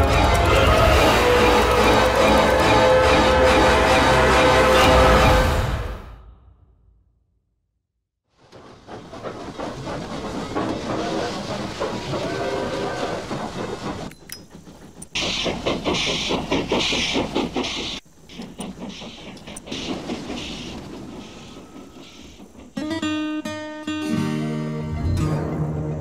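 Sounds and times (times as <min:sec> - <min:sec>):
train hissing: 0:00.0 - 0:05.9, 0:08.4 - 0:25.8
train clattering past: 0:00.0 - 0:06.0, 0:08.4 - 0:26.0.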